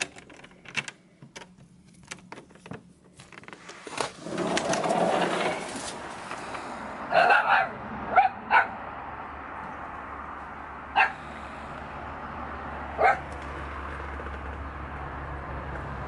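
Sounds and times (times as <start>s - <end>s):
small dog barking: 7.1s - 8.8s, 11.0s - 11.2s, 13.0s - 13.3s.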